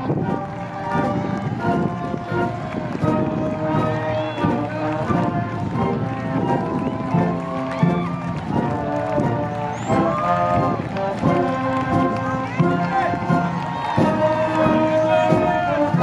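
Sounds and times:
concert band playing: 0.0 - 16.0.

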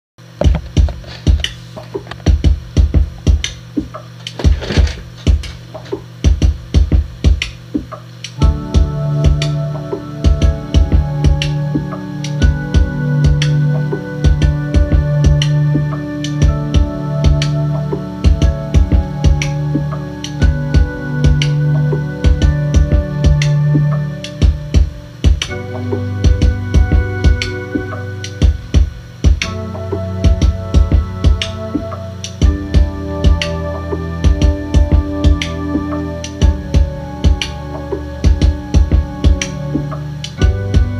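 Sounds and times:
electronic kick drum hits: 0.2 - 40.9
keyboard chords: 0.2 - 40.9
steady bass note: 8.4 - 40.9
steady low drone: 8.4 - 40.9.

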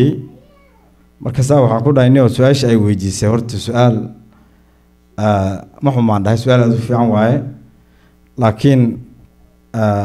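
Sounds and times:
man speaking into a microphone: 0.0 - 0.4, 1.2 - 4.3, 5.2 - 7.7, 8.4 - 10.0.

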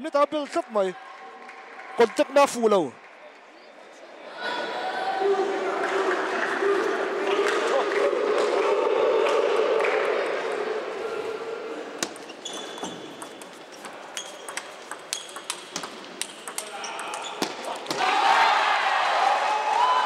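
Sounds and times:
murmur of voices: 0.0 - 12.0
table tennis ball clicking: 12.0 - 17.5.

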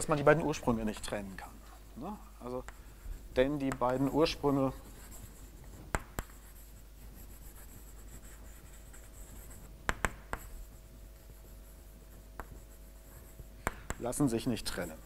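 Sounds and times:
chalk tapping and scratching: 2.6 - 15.0.

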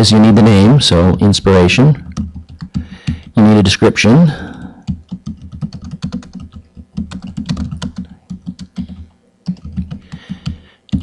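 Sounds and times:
computer keyboard typing: 1.9 - 3.4, 4.5 - 11.0.

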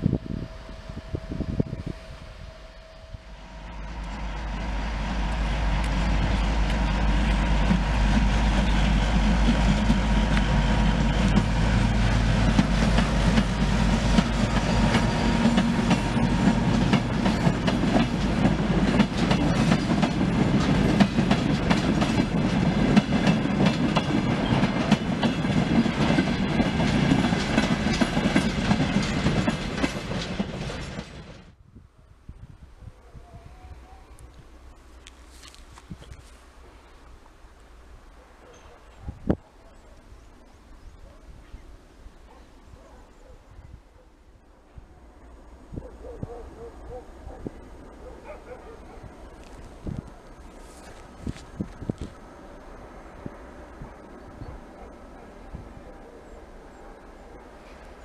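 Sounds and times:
diesel locomotive engine running: 0.0 - 31.2.

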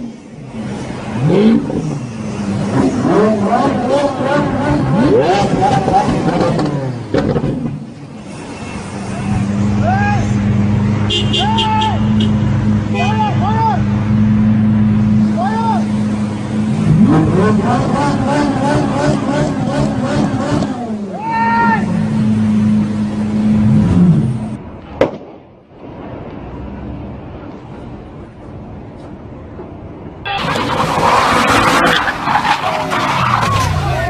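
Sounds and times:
car engine revving: 0.4 - 7.8, 8.9 - 21.2, 30.3 - 34.0.

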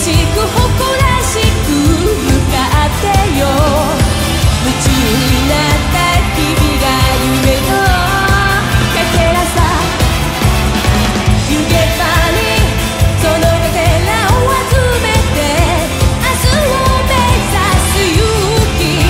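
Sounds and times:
woman singing: 0.0 - 10.2, 11.3 - 19.0
rock band playing: 0.0 - 19.0.

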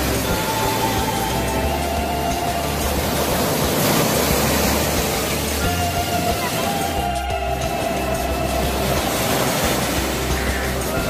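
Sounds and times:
faint background music: 0.0 - 11.0
steady rushing noise: 0.0 - 11.0.

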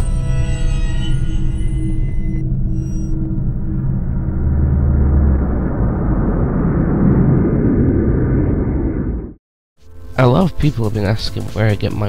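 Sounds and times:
low drone: 0.0 - 12.0
loud rumbling noise: 2.3 - 9.4.

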